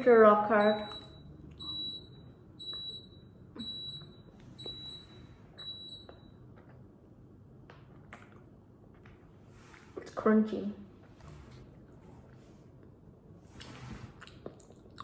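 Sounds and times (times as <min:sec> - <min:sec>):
high electronic beep: 0:00.6 - 0:06.1.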